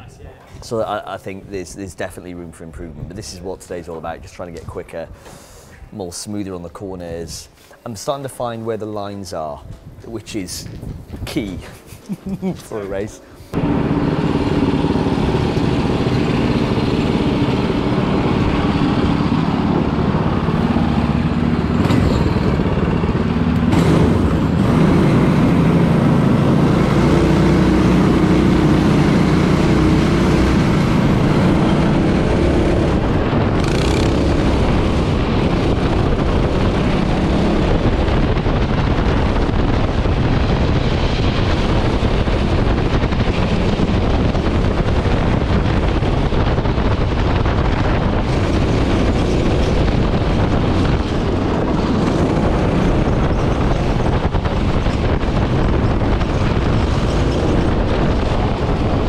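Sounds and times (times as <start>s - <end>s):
go-kart engines revving: 13.5s - 39.6s, 41.3s - 59.0s.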